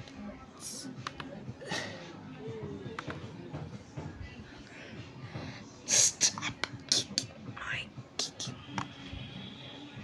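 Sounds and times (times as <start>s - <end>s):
person whispering: 5.9s - 9.4s.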